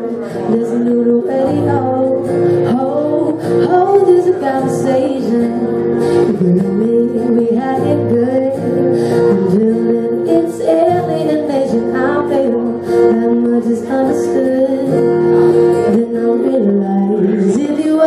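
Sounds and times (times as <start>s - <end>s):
strummed acoustic guitar: 0.0s - 18.0s
woman singing: 0.0s - 18.0s.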